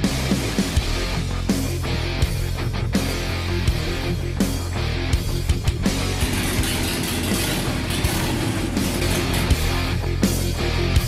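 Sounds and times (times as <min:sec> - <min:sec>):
heavy rock music: 0:00.0 - 0:11.0
motorcycle engine rumbling: 0:06.1 - 0:09.9.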